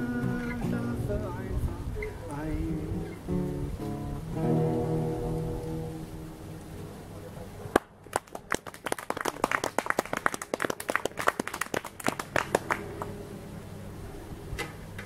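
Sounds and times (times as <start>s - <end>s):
acoustic guitar: 0.0s - 7.7s
small audience clapping: 7.7s - 13.1s.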